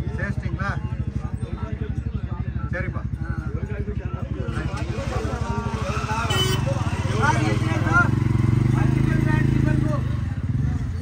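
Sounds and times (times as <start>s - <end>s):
people's voices: 0.0s - 11.0s
vehicle engine running: 0.0s - 11.0s.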